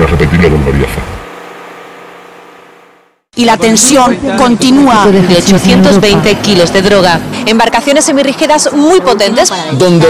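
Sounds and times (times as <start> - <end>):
low mechanical hum: 0.0 - 9.5.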